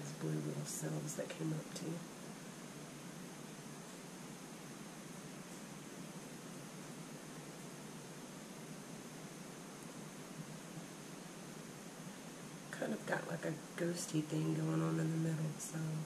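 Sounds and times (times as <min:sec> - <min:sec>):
room tone hiss: 0:00.0 - 0:16.0.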